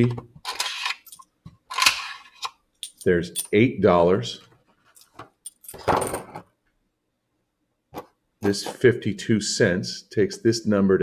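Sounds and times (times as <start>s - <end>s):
coin scrape: 0.5s - 2.5s
coins clicking: 2.8s - 3.5s.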